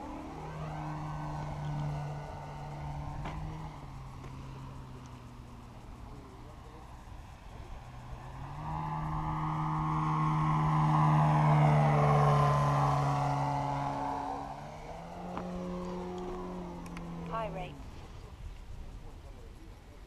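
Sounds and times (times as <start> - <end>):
model plane motor and propeller drone: 0.0 - 20.0.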